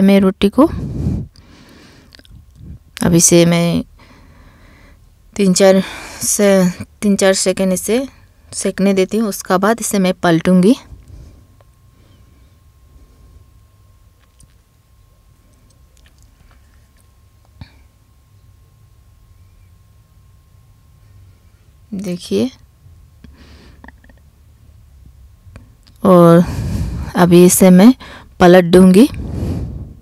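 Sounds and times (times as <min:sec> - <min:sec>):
low steady rumble: 0:00.0 - 0:30.0.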